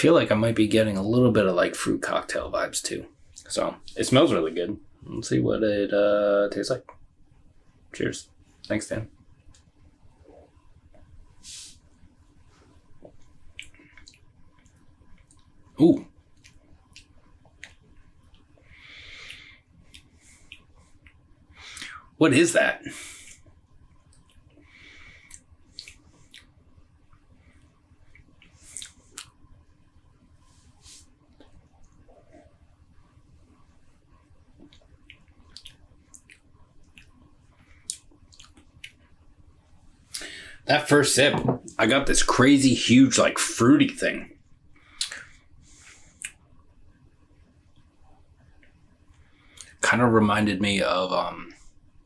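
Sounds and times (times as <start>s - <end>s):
man speaking: 0.0s - 6.8s, 8.0s - 9.1s, 22.2s - 23.0s, 40.6s - 44.3s, 49.8s - 51.6s
low room hum: 0.0s - 52.0s
lip smacks and clicks: 13.0s - 15.5s, 16.3s - 18.5s, 25.2s - 26.5s, 28.1s - 29.4s, 34.6s - 39.1s, 44.9s - 45.3s, 46.2s - 46.5s.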